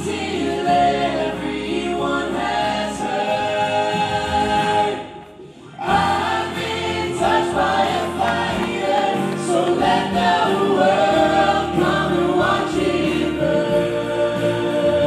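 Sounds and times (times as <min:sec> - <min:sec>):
gospel group singing in harmony: 0:00.0 - 0:15.0.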